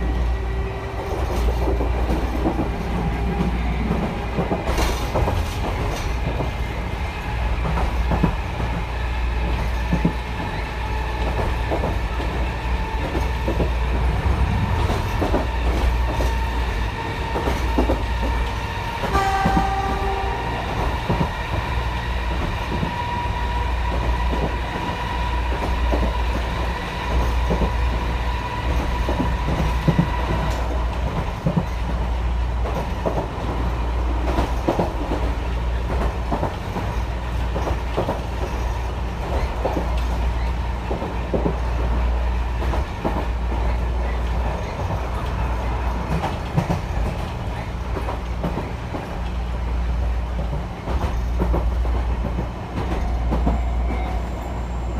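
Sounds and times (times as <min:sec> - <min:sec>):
train horn: 0:19.0 - 0:21.0.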